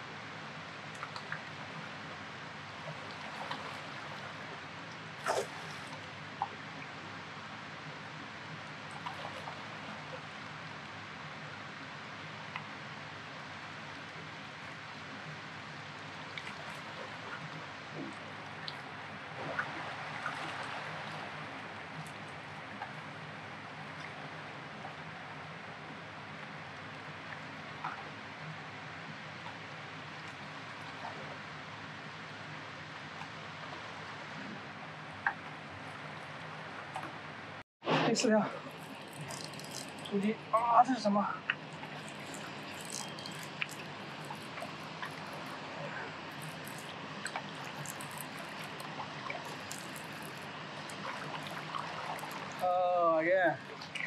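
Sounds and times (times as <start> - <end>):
river water rushing: 0.0 - 29.0, 29.6 - 54.0.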